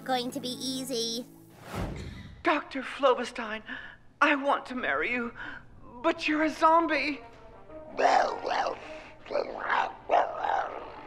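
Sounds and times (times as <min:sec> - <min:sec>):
zombie growling: 0:08.0 - 0:11.0.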